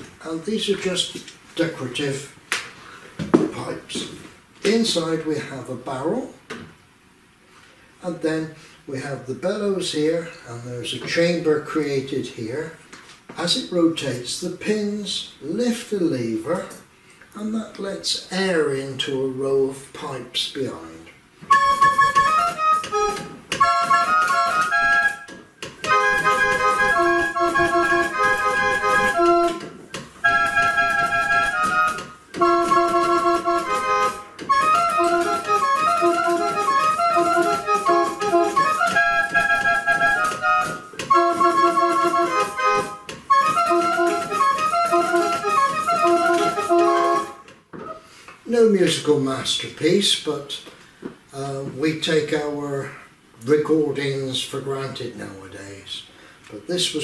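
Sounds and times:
barrel organ melody: 0:21.4 - 0:48.0.

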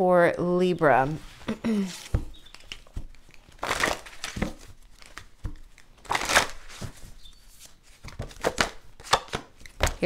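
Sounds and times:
cards tapping and snapping: 0:02.0 - 0:07.0, 0:07.6 - 0:10.0.

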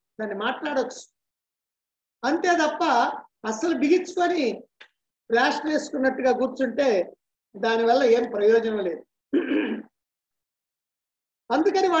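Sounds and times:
man clearing his throat: 0:09.3 - 0:09.9.

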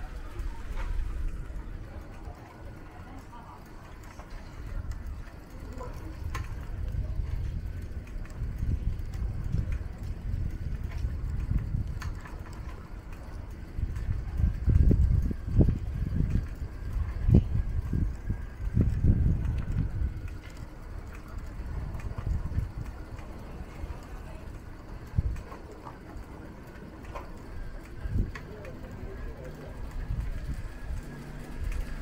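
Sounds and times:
quiet street ambience: 0:00.0 - 0:32.0
wind buffeting microphone: 0:00.0 - 0:32.0.

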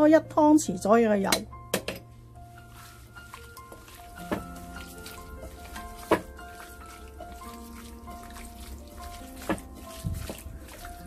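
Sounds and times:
soft calm background music: 0:00.0 - 0:11.0.

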